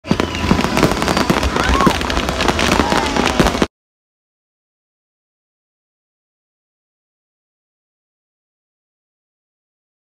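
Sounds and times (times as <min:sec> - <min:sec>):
fireworks bangs and crackles: 0:00.0 - 0:03.7
voices: 0:01.2 - 0:03.7.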